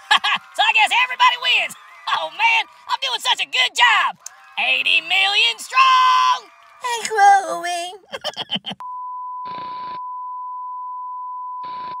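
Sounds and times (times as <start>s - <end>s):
short laugh: 8.1s - 8.8s.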